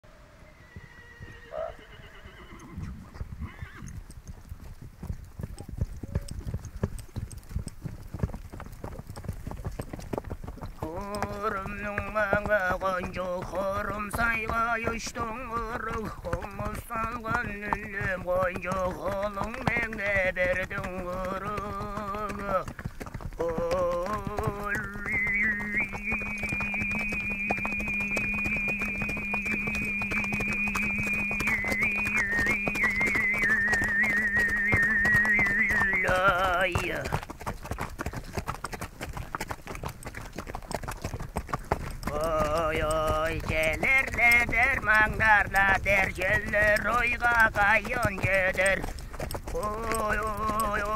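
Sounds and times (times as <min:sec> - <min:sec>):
horse hooves clip-clopping: 0:00.4 - 0:50.9
throat singing drone: 0:23.5 - 0:36.8.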